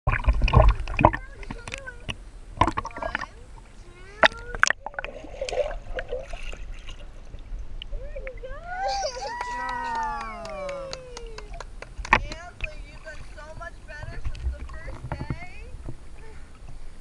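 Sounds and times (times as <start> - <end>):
pool water splashing: 0.1 - 16.1.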